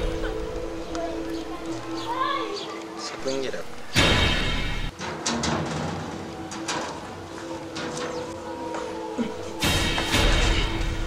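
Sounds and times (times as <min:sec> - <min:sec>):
background music: 0:00.0 - 0:11.0
metal gate clicks and clanks: 0:04.0 - 0:08.4.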